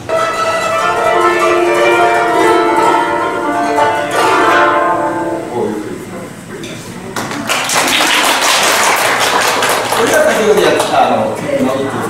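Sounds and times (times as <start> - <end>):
audience applauding: 7.2 - 11.2.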